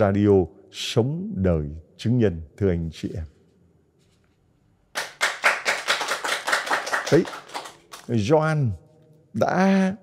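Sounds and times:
small group applauding: 4.9 - 8.1.

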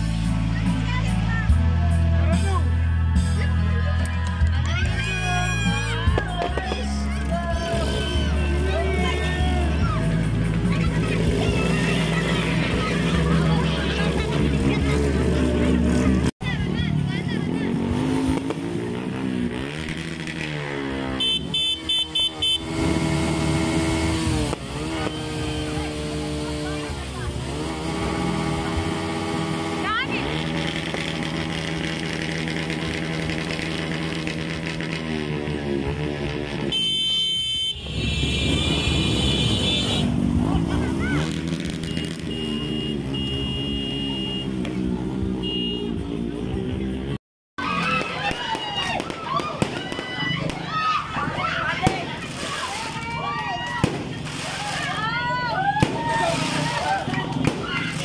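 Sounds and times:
motorcycle engines revving: 0.0 - 58.0
people's voices: 0.0 - 58.0.

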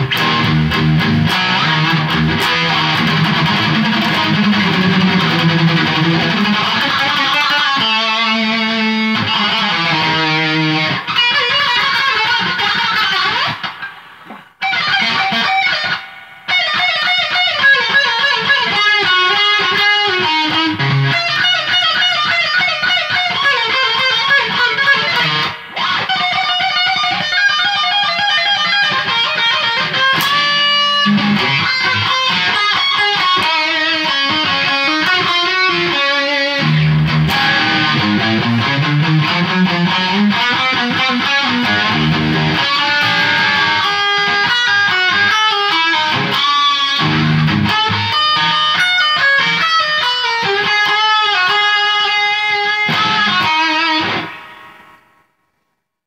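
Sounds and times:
electric guitar playing: 0.0 - 55.3.

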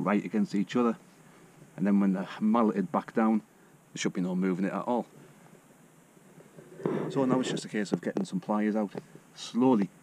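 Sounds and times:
man speaking: 4.0 - 5.1, 6.9 - 10.0.

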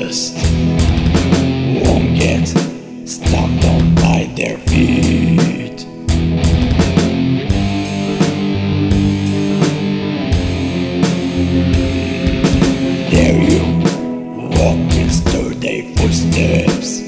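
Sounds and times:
distorted electric guitars: 0.0 - 17.0
drum kit: 0.0 - 17.0
bass riffing: 0.4 - 2.6, 3.2 - 16.9.

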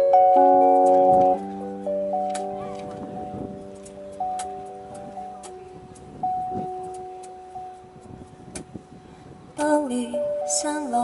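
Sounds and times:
electronic keyboard playing: 0.0 - 11.0.

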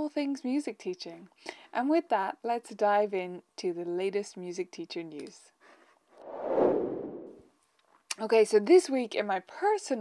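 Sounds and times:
whoosh transition effect: 6.2 - 7.4.

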